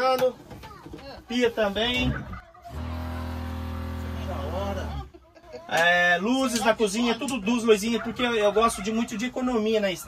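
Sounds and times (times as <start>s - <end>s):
electric water pump humming: 2.7s - 5.0s.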